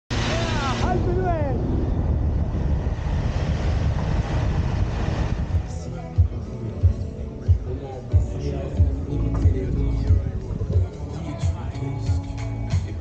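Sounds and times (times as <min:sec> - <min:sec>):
wind buffeting microphone: 0:00.1 - 0:06.4, 0:09.5 - 0:11.0
van engine and tyre rumble: 0:00.1 - 0:11.7.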